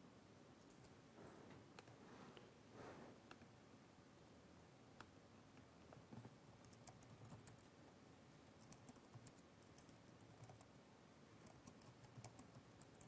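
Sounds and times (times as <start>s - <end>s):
typing on computer keyboard: 6.6s - 7.7s, 8.6s - 10.7s, 11.4s - 13.0s.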